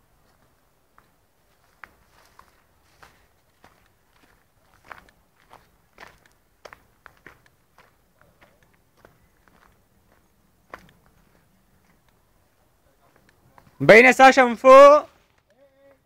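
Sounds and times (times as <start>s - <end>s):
footsteps on outdoor ground: 0.0s - 16.0s.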